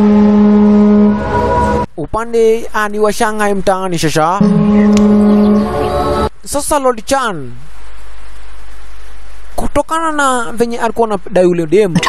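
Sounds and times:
low horn-like tone: 0:00.0 - 0:01.9, 0:04.4 - 0:06.3
sustained tones: 0:00.0 - 0:01.9, 0:04.4 - 0:06.3.

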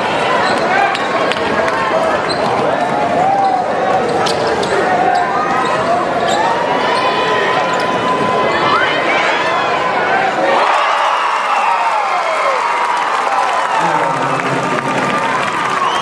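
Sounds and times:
crowd noise: 0:00.0 - 0:16.0.

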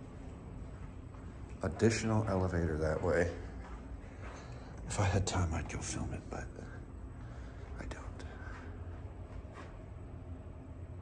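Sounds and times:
low steady hum: 0:00.0 - 0:11.0
person whispering: 0:07.6 - 0:08.8.

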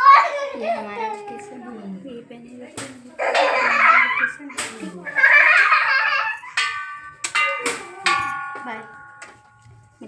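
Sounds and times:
bell-like chimes ringing: 0:06.3 - 0:10.0.

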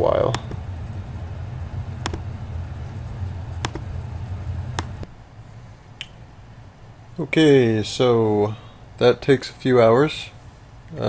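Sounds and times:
computer mouse click: 0:03.6 - 0:03.8.

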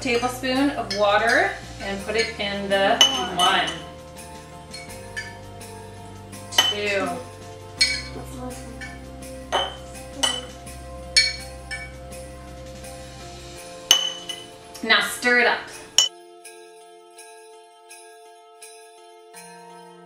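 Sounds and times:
soft background music: 0:00.0 - 0:20.0
spoon clinking on glass jar: 0:00.9 - 0:05.5, 0:06.5 - 0:07.2, 0:07.8 - 0:08.2, 0:08.8 - 0:10.6, 0:11.2 - 0:12.0, 0:13.9 - 0:14.5.

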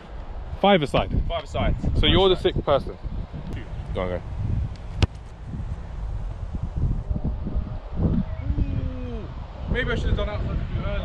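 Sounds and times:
wind buffeting microphone: 0:00.0 - 0:11.0
football kicked: 0:04.9 - 0:05.3.

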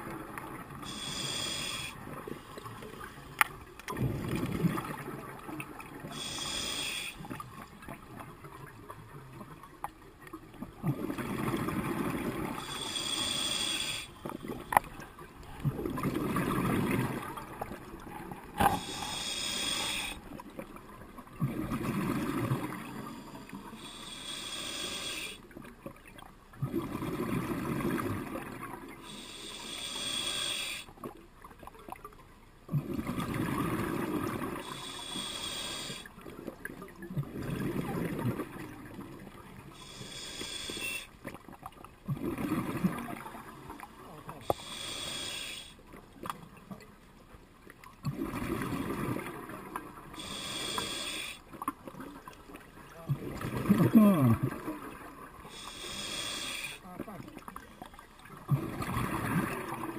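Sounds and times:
regulator hissing inhale: 0:00.8 - 0:03.3, 0:06.1 - 0:07.3, 0:12.6 - 0:14.2, 0:18.6 - 0:20.3, 0:23.0 - 0:25.4, 0:29.0 - 0:30.9, 0:34.6 - 0:36.1, 0:39.8 - 0:41.1, 0:44.5 - 0:45.8, 0:50.2 - 0:51.5, 0:55.4 - 0:56.8
bubbling exhaled air: 0:53.2 - 0:54.9.

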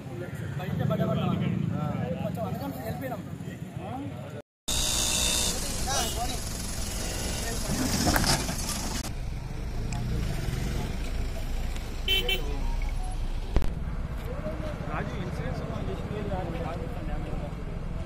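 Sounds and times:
roadside traffic noise: 0:00.0 - 0:18.0
car horn tooting: 0:04.7 - 0:07.9, 0:12.1 - 0:12.6
people talking: 0:05.5 - 0:07.9.

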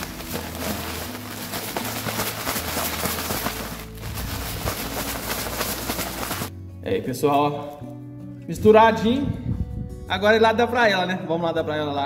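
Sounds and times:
grains rustling: 0:00.0 - 0:06.5
plastic bag crinkling: 0:00.0 - 0:06.5.

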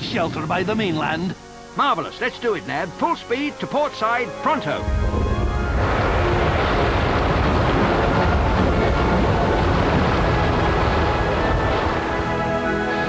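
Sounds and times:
soundtrack music: 0:02.4 - 0:13.0
loud rumbling rush: 0:04.8 - 0:13.0.

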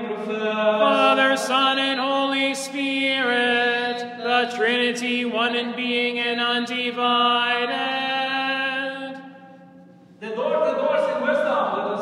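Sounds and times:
liturgical chant on sustained notes: 0:00.1 - 0:09.8.

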